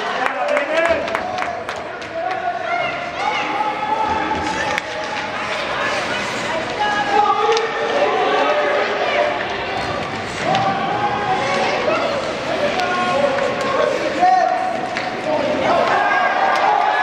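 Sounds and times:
spectators shouting: 0:02.3 - 0:17.0
sticks and puck clicking on ice: 0:04.3 - 0:08.6, 0:11.4 - 0:16.8.

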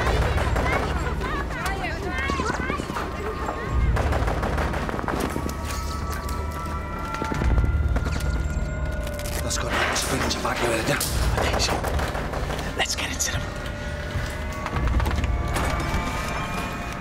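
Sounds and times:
rapid automatic gunfire: 0:00.0 - 0:01.2, 0:03.9 - 0:05.4.

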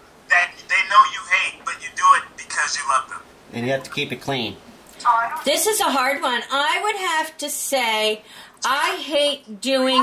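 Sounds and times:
people talking over video call: 0:00.4 - 0:10.0
man talking: 0:00.6 - 0:04.6.

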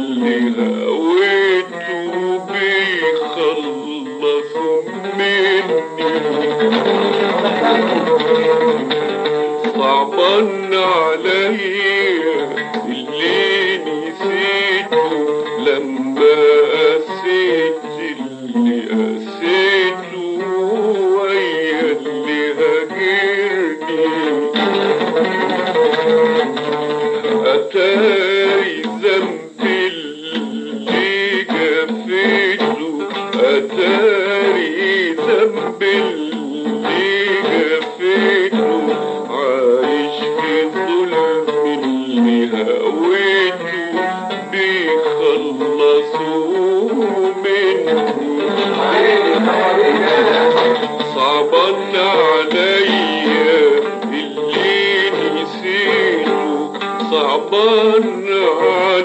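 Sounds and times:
man singing: 0:00.0 - 0:59.0
oud playing: 0:00.0 - 0:59.0.

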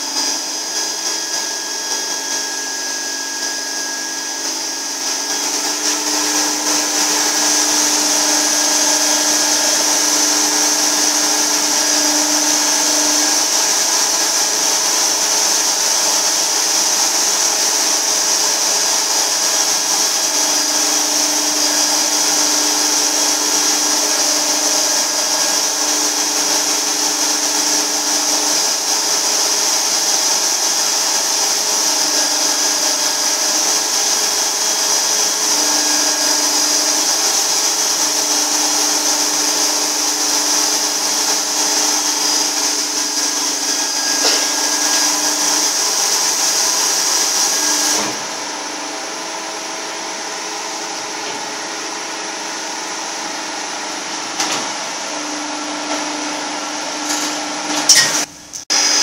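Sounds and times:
ultrasonic cleaner high-pitched hiss: 0:00.0 - 0:51.4.

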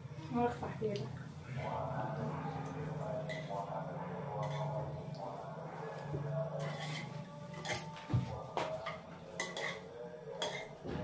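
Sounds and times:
metal spoon scraping ceramic plate: 0:03.2 - 0:03.6, 0:04.4 - 0:04.8, 0:06.5 - 0:07.9, 0:08.9 - 0:10.8.

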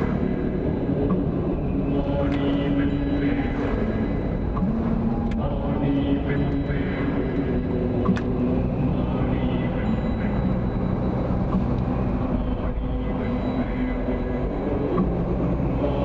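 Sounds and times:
car interior road noise: 0:00.0 - 0:16.0.

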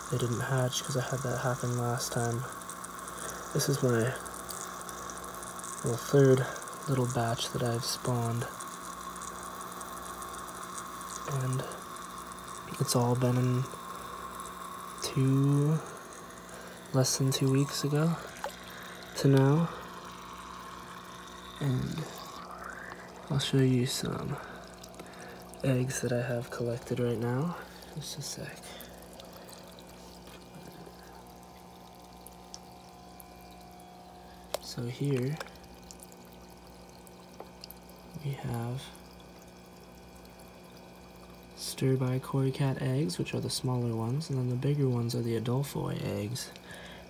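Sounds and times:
aquarium filter running water: 0:00.0 - 0:47.0
low hum: 0:12.6 - 0:36.0.

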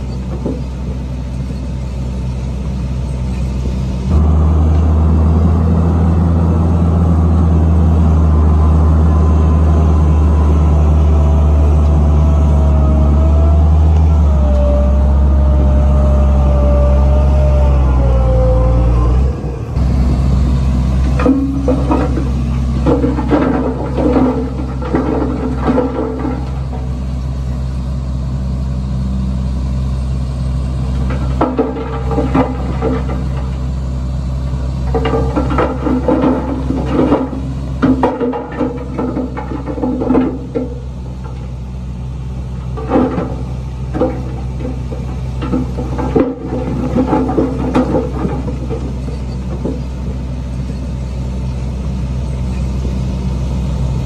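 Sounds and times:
diesel truck engine running: 0:00.0 - 0:54.0
uneven knocking and clatter: 0:42.8 - 0:49.9.

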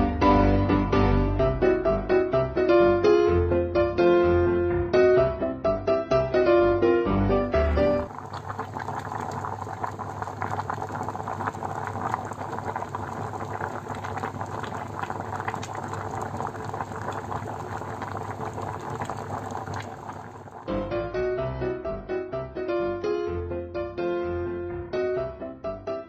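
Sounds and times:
water boiling in a pot: 0:08.1 - 0:20.7.

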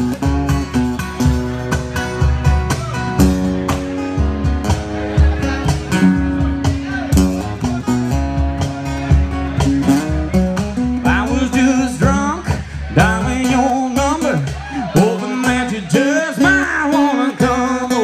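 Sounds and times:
acoustic guitars playing: 0:00.0 - 0:18.0
man singing: 0:10.8 - 0:18.0.

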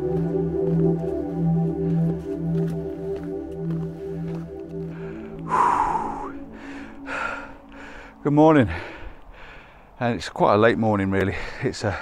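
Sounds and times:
background music: 0:00.0 - 0:09.9
man breathing hard: 0:01.3 - 0:10.0.

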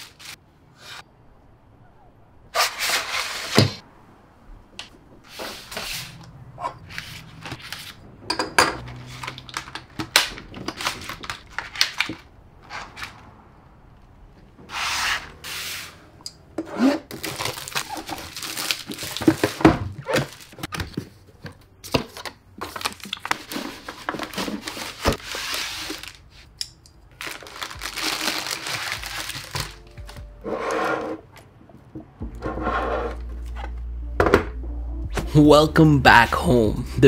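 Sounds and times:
plastic packaging crinkling and tearing: 0:17.1 - 0:20.7, 0:22.6 - 0:26.5, 0:27.1 - 0:30.2.

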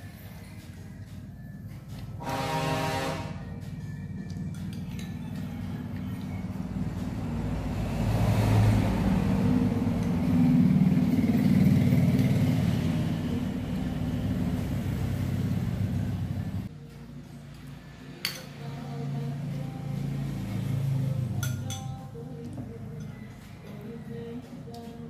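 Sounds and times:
vehicle engine rumble passing by: 0:01.4 - 0:24.4.

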